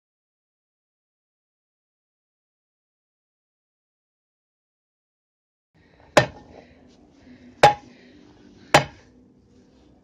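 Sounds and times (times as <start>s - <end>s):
hammer striking metal rod: 6.2s - 6.6s, 7.6s - 7.9s, 8.7s - 9.1s.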